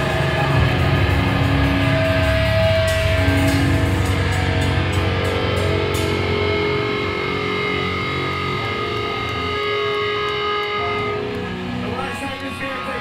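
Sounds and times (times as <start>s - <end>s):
distorted electric guitar chord: 0.0s - 13.0s.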